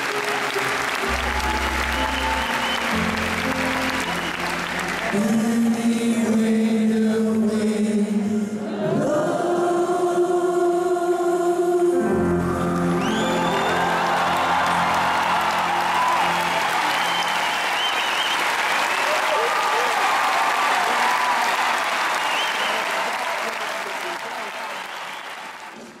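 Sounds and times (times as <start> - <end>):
audience applauding and cheering: 0.0 - 6.0, 12.2 - 26.0
high whistles: 2.0 - 3.1, 13.0 - 14.2, 16.1 - 19.3, 22.1 - 22.9, 24.7 - 25.5
shouts: 13.2 - 17.5, 18.9 - 23.8.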